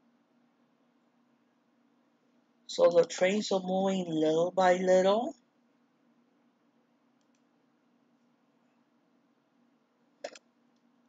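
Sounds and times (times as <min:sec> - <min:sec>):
faint room hum: 0:00.0 - 0:11.0
computer mouse clicks: 0:07.2 - 0:07.5, 0:10.2 - 0:10.9.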